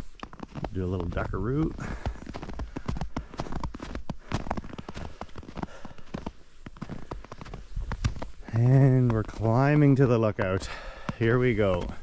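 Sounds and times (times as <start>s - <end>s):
footsteps crunching through snow: 0.0s - 12.0s.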